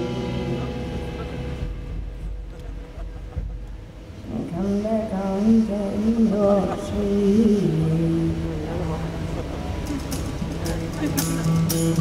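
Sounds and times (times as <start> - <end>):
low hum: 0.0 - 12.0
guitar strum: 10.0 - 12.0.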